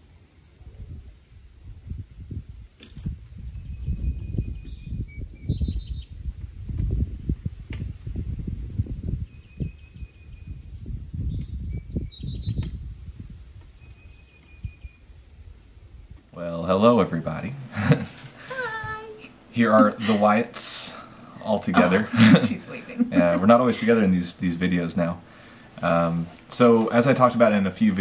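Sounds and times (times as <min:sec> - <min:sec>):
wind buffeting microphone: 0:00.0 - 0:17.6
birds chirping and trilling: 0:03.5 - 0:06.2, 0:09.2 - 0:12.9, 0:13.7 - 0:15.3.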